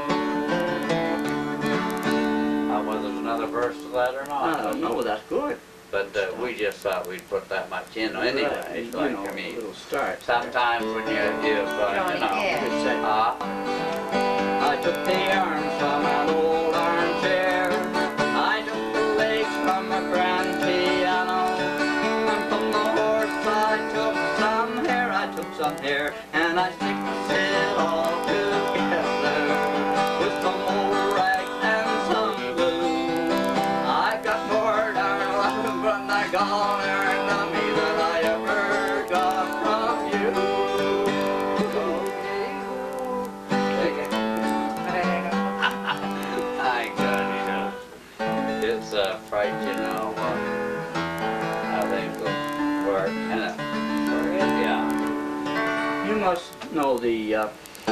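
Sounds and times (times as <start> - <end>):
acoustic guitars playing bluegrass: 0.0 - 57.9.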